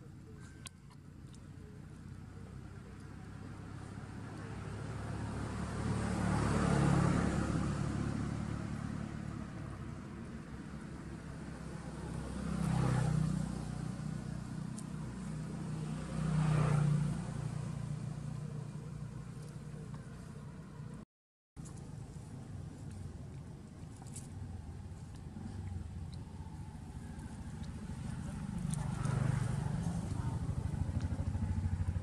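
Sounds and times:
low engine hum: 0.0 - 21.0, 21.6 - 32.0
vehicles passing: 0.0 - 21.0, 21.6 - 32.0.

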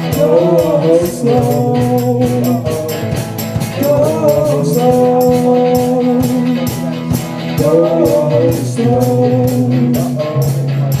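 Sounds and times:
bass guitar chords: 0.0 - 11.0
drum kit steady beat: 0.0 - 11.0
electric guitars: 0.0 - 11.0.

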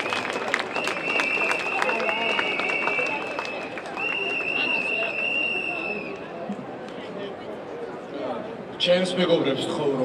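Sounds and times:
people's voices: 0.0 - 10.0
street noise: 0.0 - 10.0.

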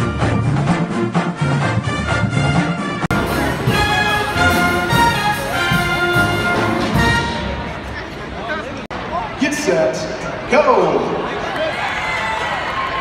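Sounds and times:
pep band brass chords: 0.0 - 8.0.

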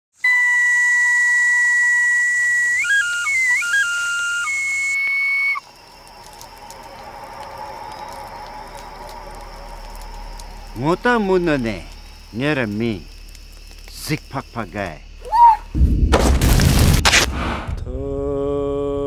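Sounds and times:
breathy whistle-like tune: 0.2 - 5.7
hiss with faint crackles: 0.3 - 15.4.

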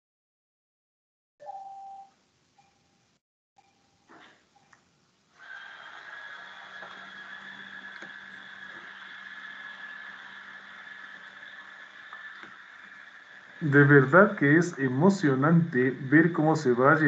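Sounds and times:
constant high whine: 4.0 - 17.0
steady hiss: 4.1 - 17.0
low hum: 5.4 - 17.0.

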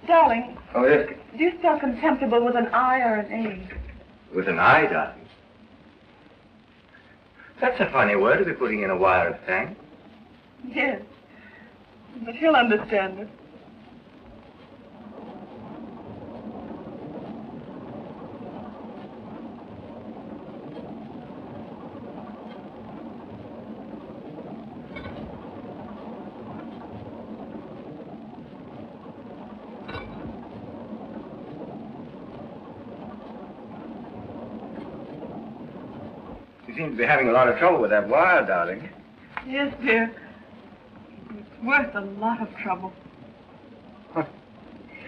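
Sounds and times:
train rumbling: 0.0 - 5.4, 7.4 - 45.0.

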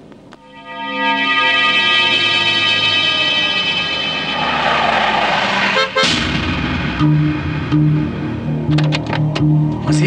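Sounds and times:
rushing noise: 0.4 - 8.7
car engines racing: 2.0 - 10.0.

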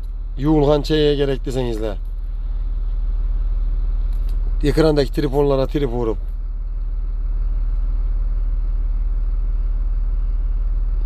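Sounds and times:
diesel machinery rumbling: 0.0 - 11.0.

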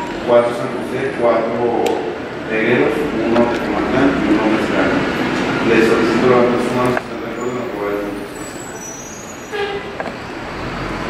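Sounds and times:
voices murmuring: 0.0 - 9.4
room noise: 0.0 - 11.0.

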